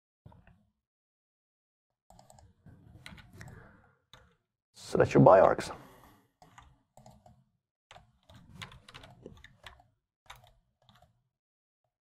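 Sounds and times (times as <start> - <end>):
keyboard and mouse clicks: 2.1 - 4.4, 6.4 - 11.2.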